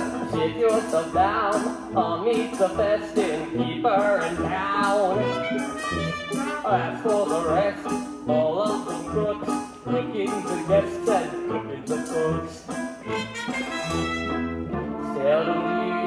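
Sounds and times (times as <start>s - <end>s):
voices singing: 0.0s - 14.4s, 15.0s - 16.0s
pit band with keyboard: 0.0s - 16.0s
light percussion: 4.0s - 14.3s.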